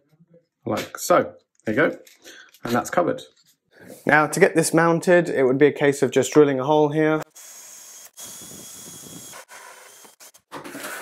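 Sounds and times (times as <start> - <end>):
cordless drill boring wood: 7.2 - 11.0.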